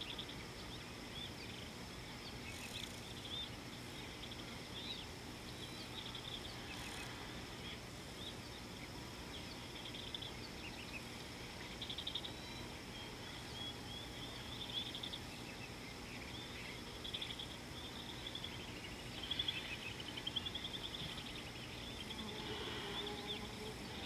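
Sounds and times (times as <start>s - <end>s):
birds chirping and trilling: 0.0s - 24.0s
steady high-pitched hum: 0.0s - 24.0s.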